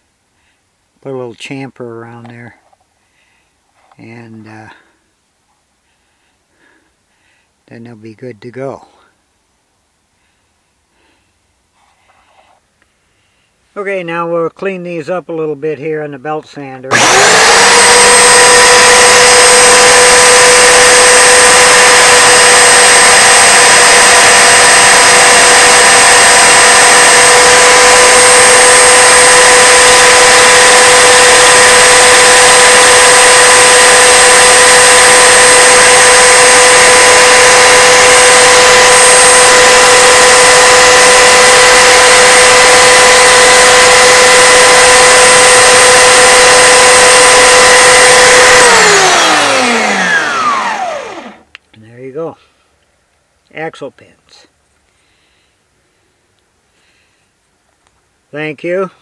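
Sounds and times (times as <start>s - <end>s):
motor winding down: 16.9s - 51.5s
belt sander running: 16.9s - 51.6s.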